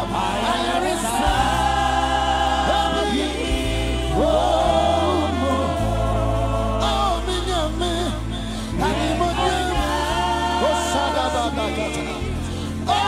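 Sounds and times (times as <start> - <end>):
gospel choir singing: 0.0 - 13.0.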